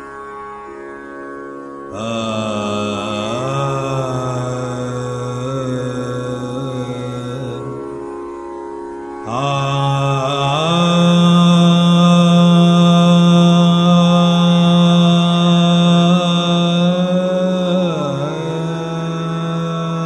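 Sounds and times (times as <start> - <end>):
man singing slow classical vocal: 1.9 - 8.1, 9.2 - 20.0
steady drone: 1.9 - 20.0.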